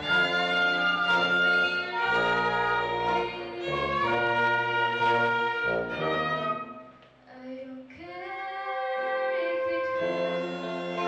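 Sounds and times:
orchestra accompaniment: 0.0s - 6.9s, 9.7s - 11.0s
woman singing: 1.8s - 4.8s, 7.3s - 11.0s.

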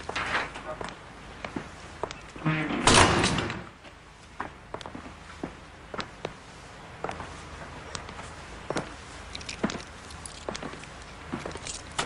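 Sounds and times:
lift doors sliding: 2.3s - 3.8s.

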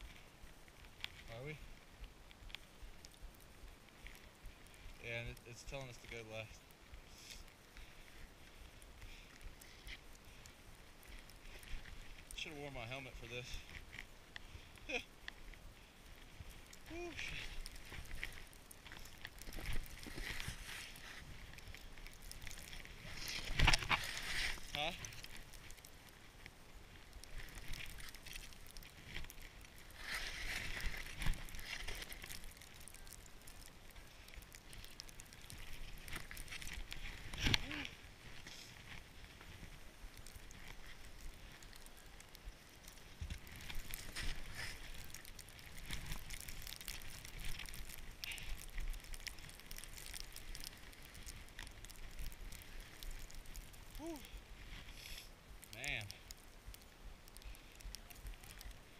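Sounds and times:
skis swishing over snow: 16.8s - 21.9s, 22.6s - 25.2s, 29.8s - 32.5s.

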